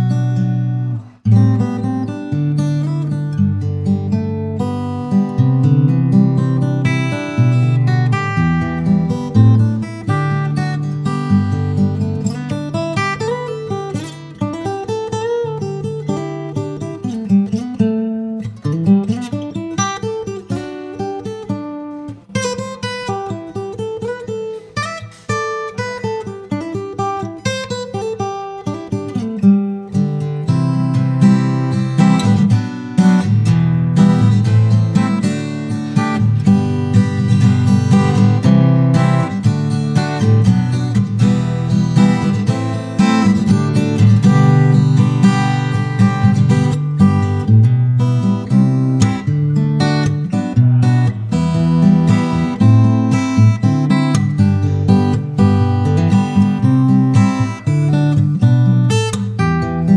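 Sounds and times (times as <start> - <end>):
fingerstyle acoustic guitar: 0.0 - 59.9.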